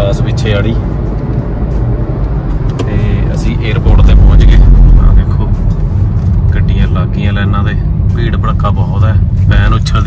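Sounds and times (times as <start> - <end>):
car cabin road rumble: 0.0 - 10.0
people talking: 2.8 - 5.6, 6.6 - 10.0.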